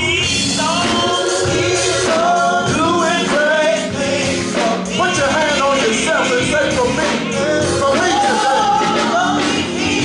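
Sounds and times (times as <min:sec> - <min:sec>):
group singing gospel: 0:00.0 - 0:10.0.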